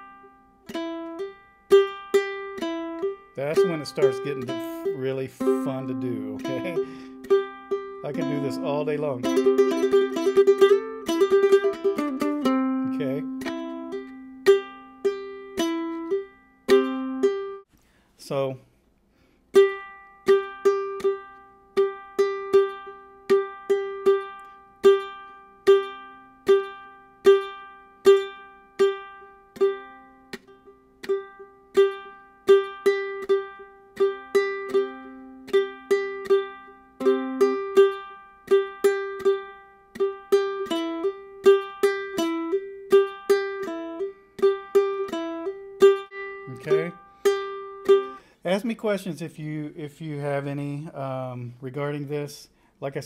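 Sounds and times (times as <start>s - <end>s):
ukulele played clawhammer style: 0.0s - 18.5s, 19.5s - 53.0s.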